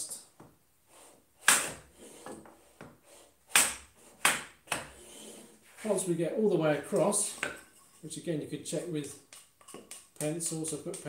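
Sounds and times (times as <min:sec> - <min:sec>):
plane sliding on wood: 0:00.8 - 0:03.4, 0:04.0 - 0:06.0.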